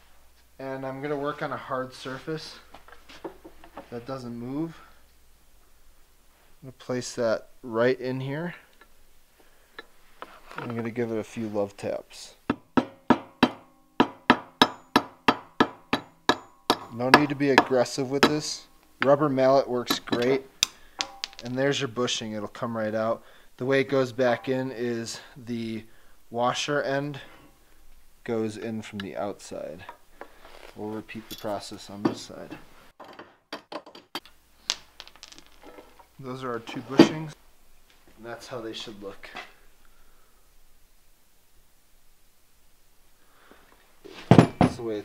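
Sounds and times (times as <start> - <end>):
rubber mallet tapping on metal: 12.5 - 18.4, 21.0 - 21.4.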